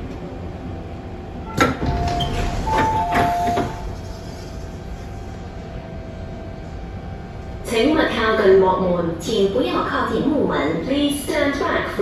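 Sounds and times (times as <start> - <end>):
low hum of stopped train: 0.0 - 12.0
train doors clunking open: 1.4 - 4.5.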